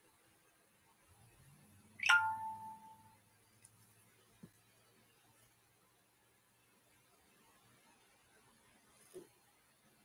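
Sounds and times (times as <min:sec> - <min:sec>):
bell-like chime: 0:02.0 - 0:03.1.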